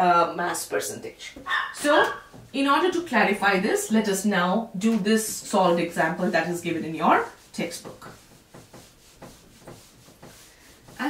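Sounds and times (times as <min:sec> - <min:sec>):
eraser rubbing on whiteboard: 0:05.2 - 0:11.0.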